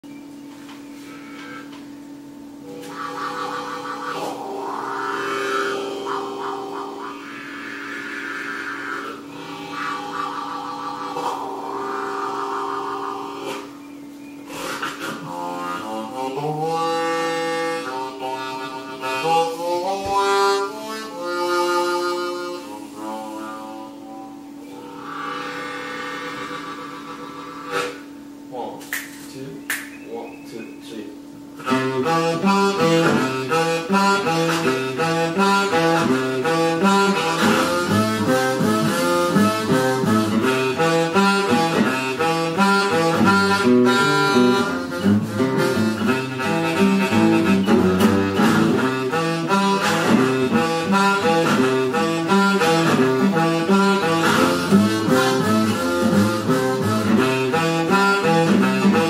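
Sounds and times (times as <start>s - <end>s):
blues harmonica: 0.9s - 28.6s, 31.6s - 59.0s
acoustic guitar: 31.6s - 59.0s.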